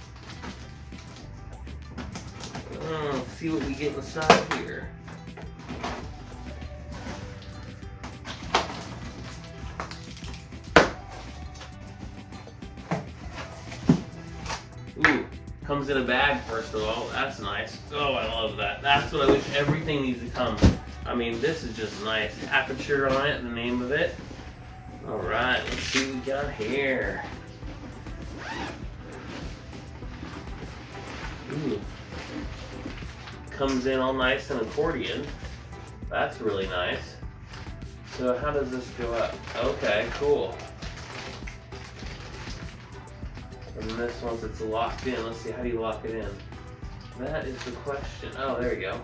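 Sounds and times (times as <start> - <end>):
background music: 0.0 - 49.0
cardboard snaps: 9.8 - 11.0
zipper on fabric bag: 28.2 - 32.9.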